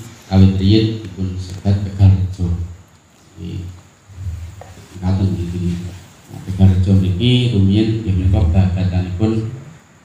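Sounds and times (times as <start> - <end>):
man's low voice through microphone: 0.0 - 9.8.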